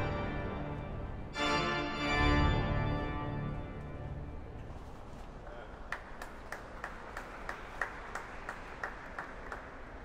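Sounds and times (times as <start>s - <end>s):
faint applause: 5.5s - 10.0s
hand clapping: 5.9s - 10.0s.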